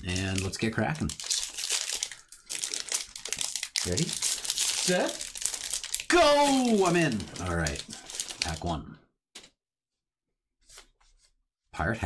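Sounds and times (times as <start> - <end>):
foil wrapper crinkling torn open: 0.0 - 8.6.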